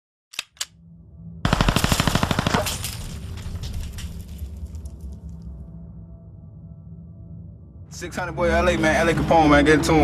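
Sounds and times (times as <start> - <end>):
low drone: 0.8 - 10.0
machine-gun burst: 1.5 - 2.8.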